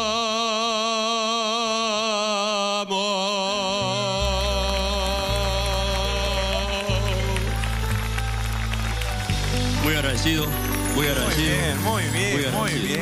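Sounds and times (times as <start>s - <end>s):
live band playing chords: 4.3s - 13.0s
audience applause: 4.6s - 13.0s.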